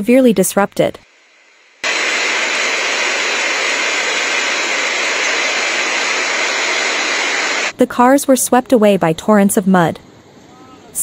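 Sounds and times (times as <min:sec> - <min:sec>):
loud rushing hiss: 0:01.1 - 0:07.7.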